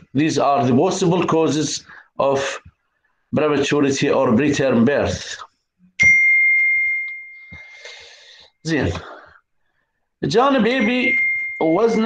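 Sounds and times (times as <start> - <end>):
clear high ding: 6.0 - 7.6, 10.8 - 12.0.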